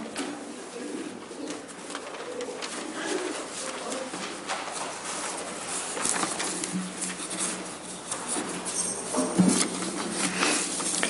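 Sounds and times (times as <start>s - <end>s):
congregation rustling: 0.0s - 11.0s.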